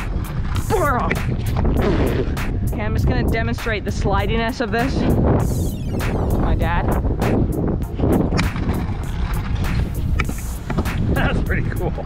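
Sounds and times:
background music with regular beat: 0.0s - 12.0s
scooter wheels rolling on concrete: 8.2s - 11.5s.

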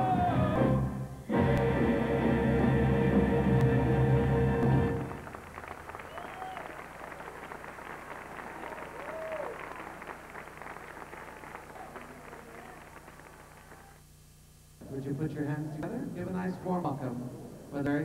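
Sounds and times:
stage music with held notes: 0.0s - 6.1s
audience clapping and cheering: 4.6s - 14.0s.

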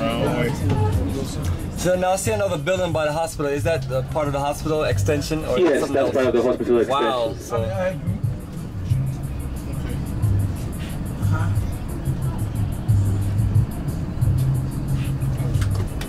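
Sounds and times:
bus engine and road rumble: 0.0s - 16.0s
music with steady bass line: 7.4s - 16.0s.

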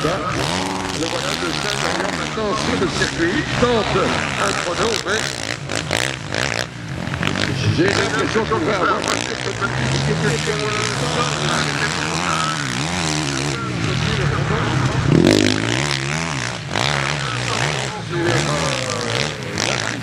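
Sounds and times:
motorbike engine revving: 0.0s - 20.0s.

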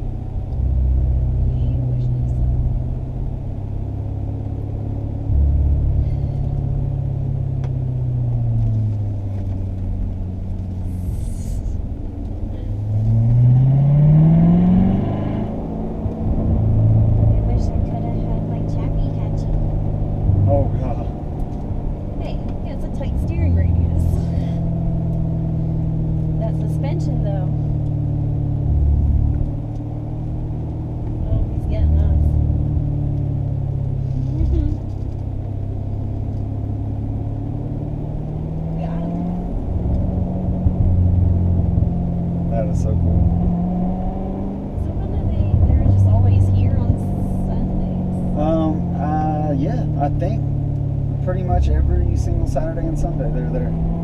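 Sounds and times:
car engine running from inside cabin: 0.0s - 54.0s.

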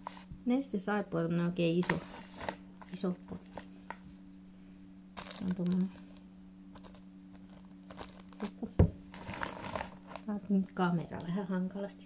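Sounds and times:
plastic rustle: 1.8s - 3.7s, 5.2s - 10.5s.

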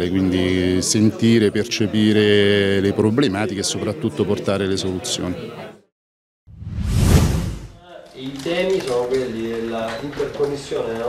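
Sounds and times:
whoosh: 6.5s - 7.8s.

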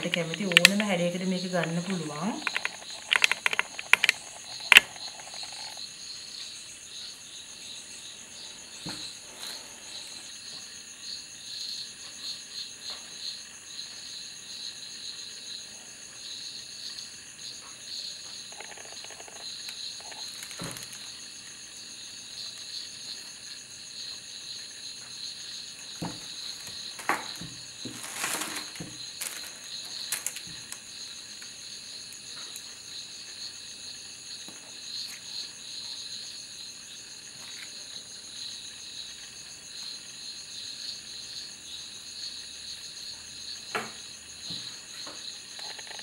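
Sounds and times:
insects chirring: 0.0s - 46.0s.

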